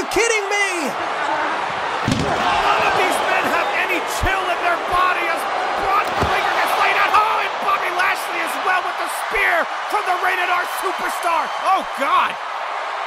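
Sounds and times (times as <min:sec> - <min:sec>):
plastic figures thumping: 0:02.0 - 0:02.5, 0:06.0 - 0:06.5.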